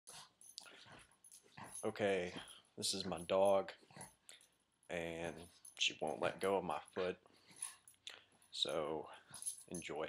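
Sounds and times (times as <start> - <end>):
faint dog sounds: 0.2 - 10.0
man speaking: 1.8 - 3.8, 4.9 - 7.2, 8.6 - 10.0.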